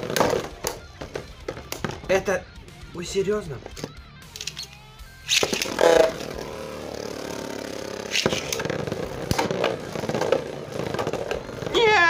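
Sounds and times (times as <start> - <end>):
spinning tops clacking together: 3.8 - 6.3, 8.0 - 11.5
spinning tops scraping and whirring: 3.8 - 12.0
spinning top launch rip: 4.5 - 12.0.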